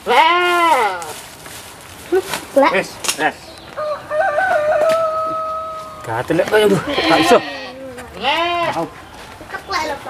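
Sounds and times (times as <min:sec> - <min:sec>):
goats bleating: 0:00.0 - 0:01.1, 0:06.5 - 0:08.9.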